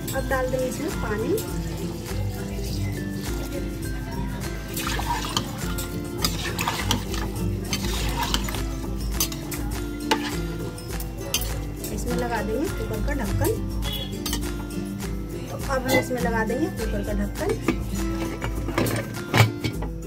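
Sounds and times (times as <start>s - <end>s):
water pouring into a pot: 0.0s - 10.6s
background music: 0.0s - 20.0s
metal spoon clinking on pot: 4.7s - 10.5s, 11.3s - 11.7s, 13.8s - 14.5s.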